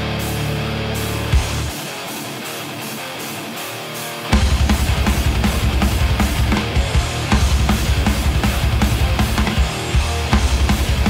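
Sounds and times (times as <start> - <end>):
strummed electric guitar: 0.0 - 11.0.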